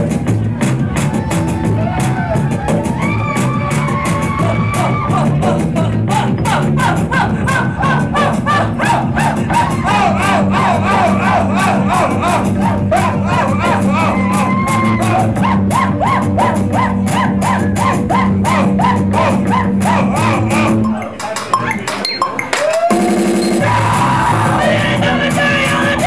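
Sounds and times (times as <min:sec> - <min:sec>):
live post-punk band playing: 0:00.0 - 0:26.0.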